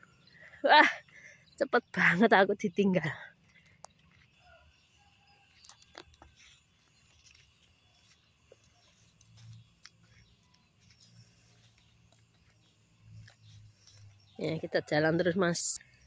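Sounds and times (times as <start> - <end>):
soft scattered clicks: 5.6 - 14.1.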